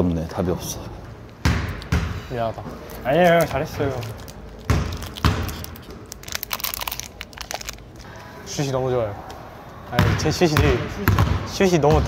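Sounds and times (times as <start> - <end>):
basketball thudding on court: 1.4 - 2.2, 4.7 - 5.5, 10.0 - 12.0.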